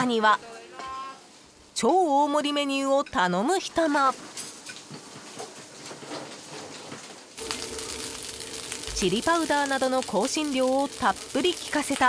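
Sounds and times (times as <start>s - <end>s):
rice frying in a pan: 3.7s - 12.0s.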